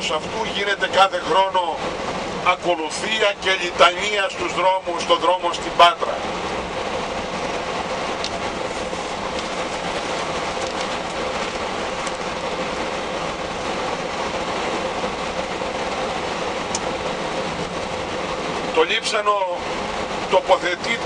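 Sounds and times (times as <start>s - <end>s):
coach engine and road noise: 0.0s - 21.0s.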